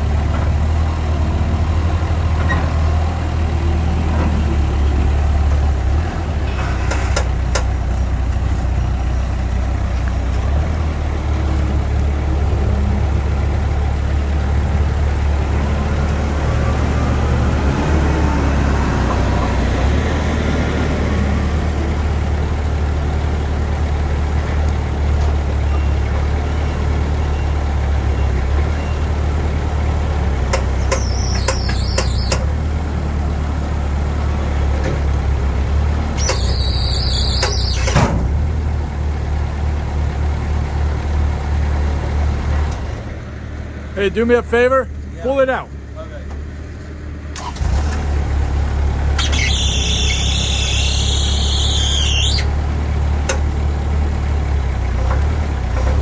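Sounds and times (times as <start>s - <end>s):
forklift engine droning: 0.0s - 56.0s.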